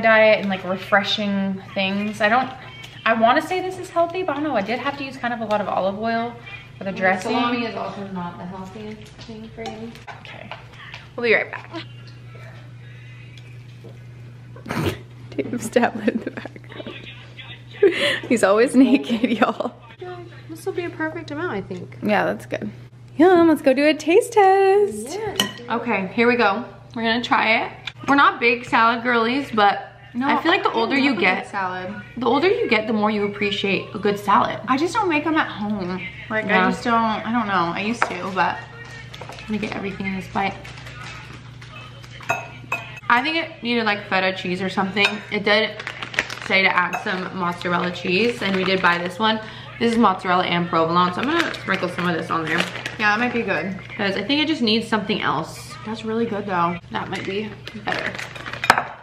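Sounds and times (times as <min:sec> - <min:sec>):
steady low hum: 0:00.0 - 0:51.2
forks clinking against dish: 0:25.4 - 0:25.6, 0:41.7 - 0:43.1, 0:45.0 - 0:45.4, 0:46.8 - 0:47.4.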